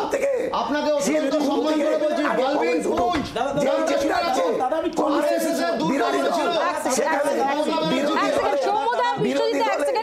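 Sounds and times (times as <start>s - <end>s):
several people talking: 0.0s - 10.0s.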